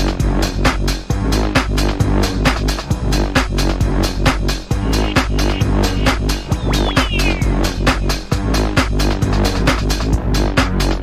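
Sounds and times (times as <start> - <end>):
garage dance track with sub-bass: 0.0 - 11.0.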